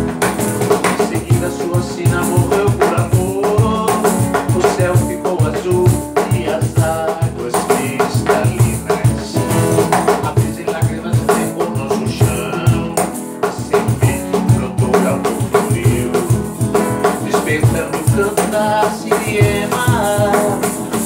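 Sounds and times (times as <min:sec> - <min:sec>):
acoustic guitar strumming: 0:00.0 - 0:21.0
cajon bass strokes: 0:00.0 - 0:21.0.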